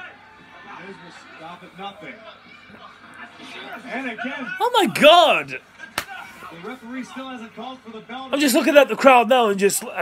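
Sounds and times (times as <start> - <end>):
commentator talking: 4.6 - 5.6.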